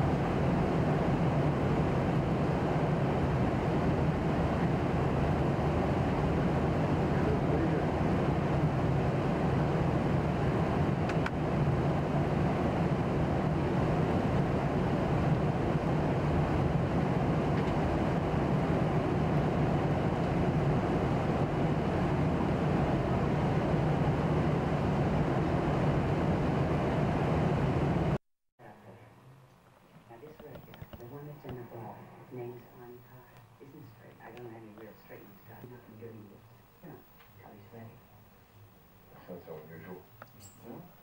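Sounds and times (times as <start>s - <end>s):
airliner cabin drone: 0.0s - 29.0s, 30.1s - 38.0s.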